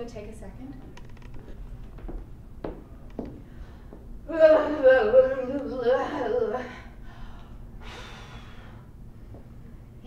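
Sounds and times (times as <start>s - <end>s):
woman breathing deeply: 3.3s - 4.1s, 6.7s - 9.1s.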